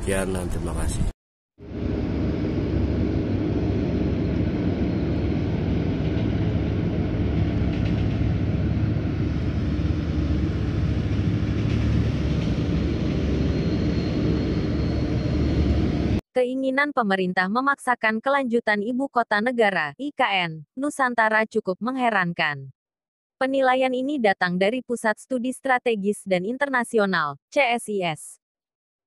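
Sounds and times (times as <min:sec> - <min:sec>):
excavator diesel engine drone: 0:01.6 - 0:16.2.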